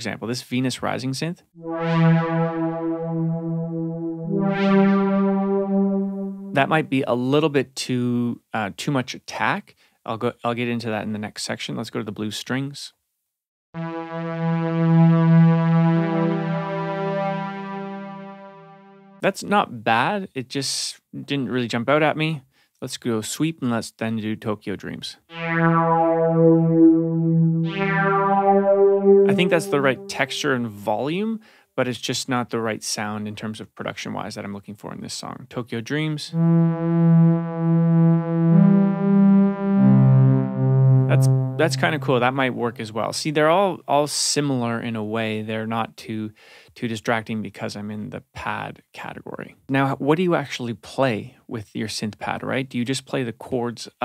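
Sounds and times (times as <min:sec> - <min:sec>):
low synth string pad: 0:25.6 - 0:30.7, 0:36.4 - 0:42.3.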